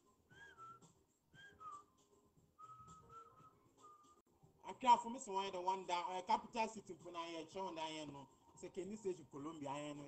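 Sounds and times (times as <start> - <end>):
faint person whistling: 0.0 - 4.2.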